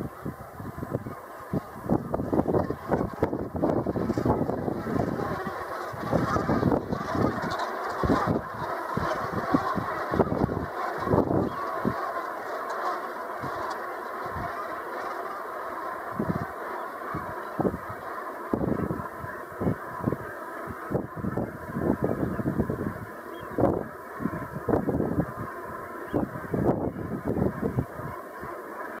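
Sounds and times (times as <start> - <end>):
flock of geese calling: 0.0 - 29.0.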